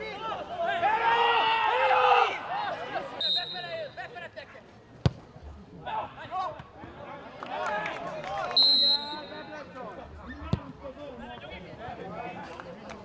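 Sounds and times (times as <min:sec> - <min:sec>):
players shouting: 0:00.0 - 0:04.0
referee's whistle blast: 0:03.2 - 0:03.8, 0:08.6 - 0:09.5.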